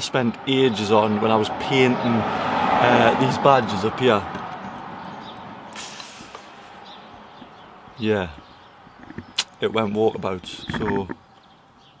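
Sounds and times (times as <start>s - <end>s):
low hiss of open air: 0.0s - 12.0s.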